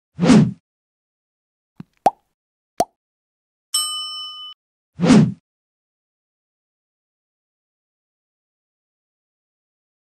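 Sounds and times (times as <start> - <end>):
bright bell ding: 3.8 - 4.6.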